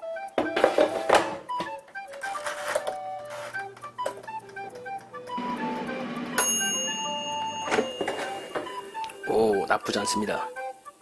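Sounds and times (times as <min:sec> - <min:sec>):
light background music: 0:00.0 - 0:11.0
timer bell ding: 0:05.4 - 0:09.6.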